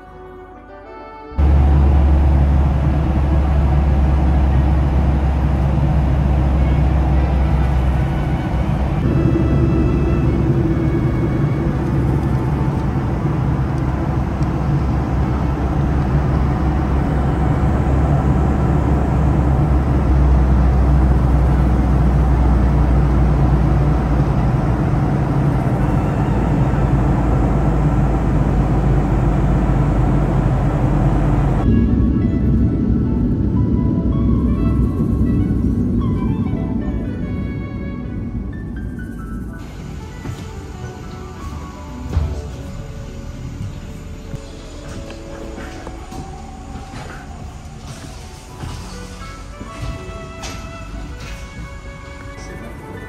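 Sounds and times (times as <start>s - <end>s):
airliner cabin rumble: 1.4s - 53.0s.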